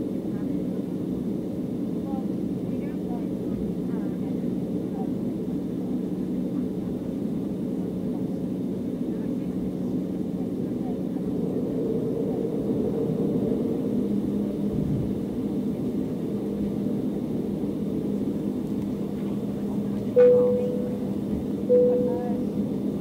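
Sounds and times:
airplane cabin engine hum: 0.0 - 23.0.

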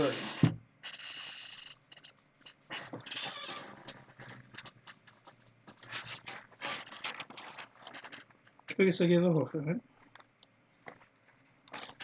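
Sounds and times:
paper rustling and crinkling: 3.6 - 8.7.

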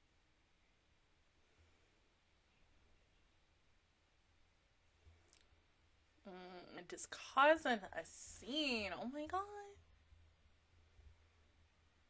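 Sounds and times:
person speaking: 6.3 - 9.7.

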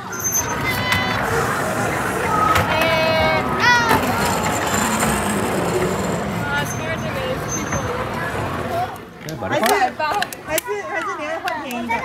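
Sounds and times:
thin high whine: 0.0 - 8.3
ride-on train running on rails: 0.0 - 8.9
faint children's voices: 0.0 - 9.2.

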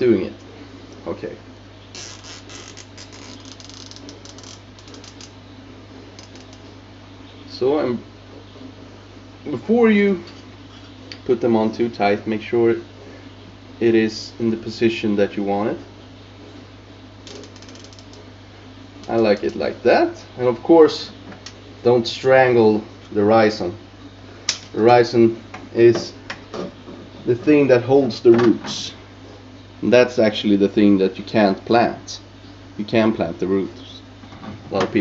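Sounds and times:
steady low hum: 0.0 - 35.0
cable tie ratcheting clicks: 2.0 - 5.3, 6.2 - 6.6, 17.3 - 18.2.

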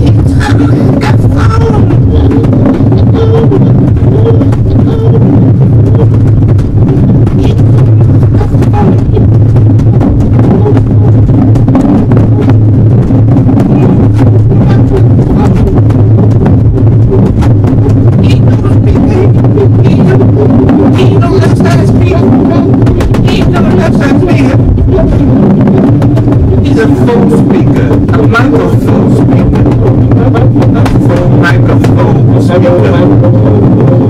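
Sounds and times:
wordless vocal sounds: 0.0 - 6.2, 6.8 - 34.0
distorted noise music drone: 0.0 - 34.0.

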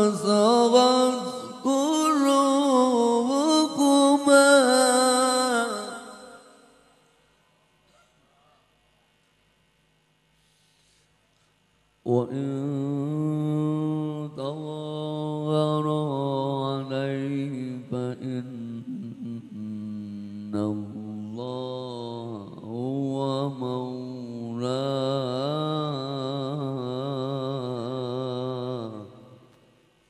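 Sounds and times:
man chanting melodic recitation: 0.0 - 6.4.

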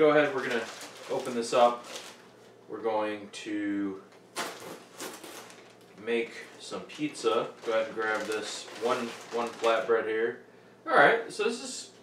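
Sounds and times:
plastic bag crinkling: 0.0 - 2.6, 4.3 - 10.1.

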